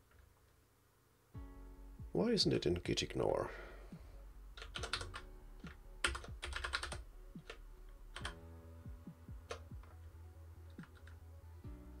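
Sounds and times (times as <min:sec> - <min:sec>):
computer keyboard typing: 0:04.6 - 0:08.4, 0:09.4 - 0:10.1, 0:10.7 - 0:11.2.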